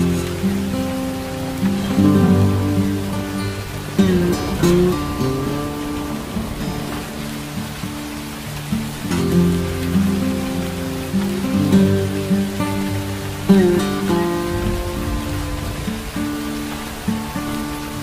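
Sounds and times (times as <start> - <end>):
acoustic guitar music: 0.0 - 18.0
rain hiss: 0.0 - 18.0.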